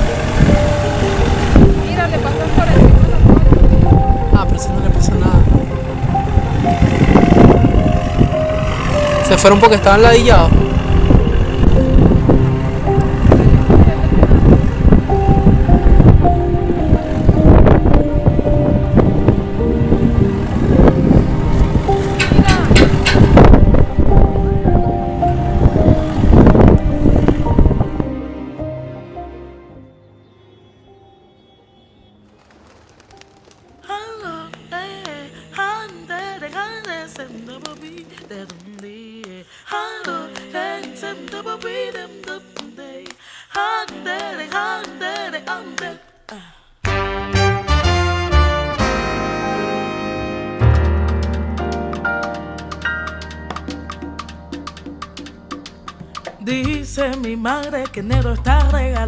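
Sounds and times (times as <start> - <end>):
wind buffeting microphone: 0.0 - 9.2, 10.2 - 28.2
boat engine humming: 0.0 - 29.9
music with held notes: 0.0 - 31.7, 46.8 - 59.0.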